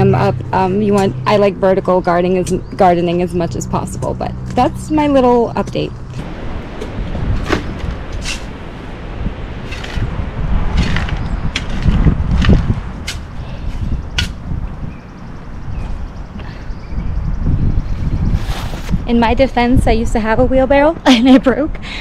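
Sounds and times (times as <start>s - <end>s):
low rumble: 0.0s - 21.0s
shovel digging into loose dirt: 9.6s - 10.1s, 18.3s - 19.0s.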